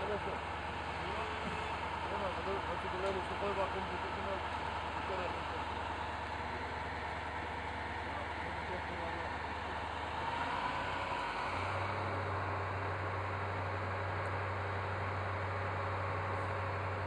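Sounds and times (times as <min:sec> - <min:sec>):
outdoor background noise: 0:00.0 - 0:17.0
vehicle engine idling: 0:00.0 - 0:17.0.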